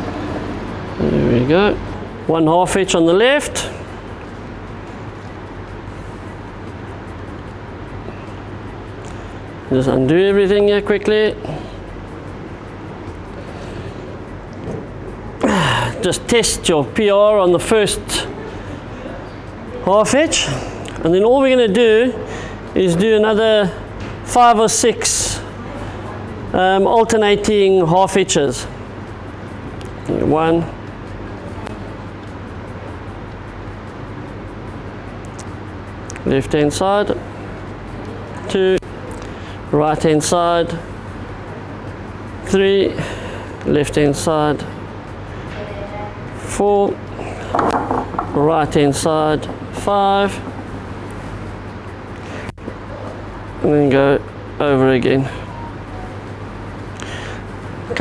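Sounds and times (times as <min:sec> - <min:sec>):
faint background music: 0:00.0 - 0:58.0
steady low hum: 0:00.0 - 0:58.0.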